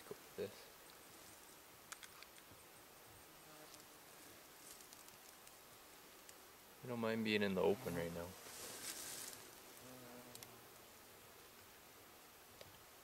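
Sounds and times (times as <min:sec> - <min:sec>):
faint insect buzz: 0:00.0 - 0:13.0.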